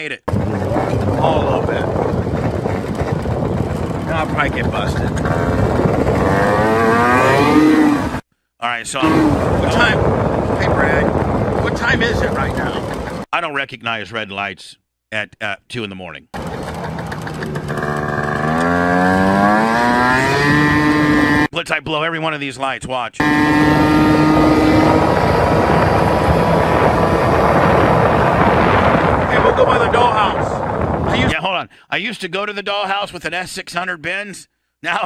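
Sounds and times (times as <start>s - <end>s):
moped engine accelerating: 0.3s - 8.2s, 9.0s - 13.3s, 16.4s - 21.5s, 23.2s - 29.6s
wind rumble on microphone: 0.3s - 8.2s, 9.0s - 13.3s, 23.2s - 31.4s.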